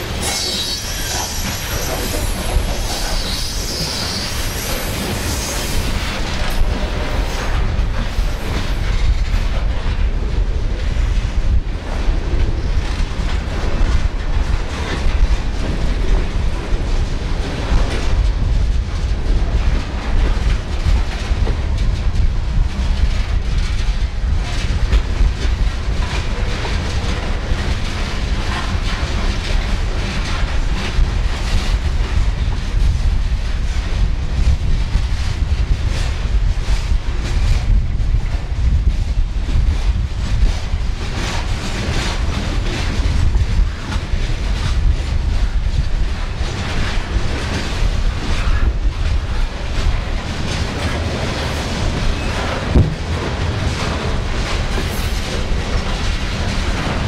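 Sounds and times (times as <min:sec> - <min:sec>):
low train rumble: 0:00.0 - 0:57.0
steel wheels clattering on rails: 0:00.0 - 0:57.0.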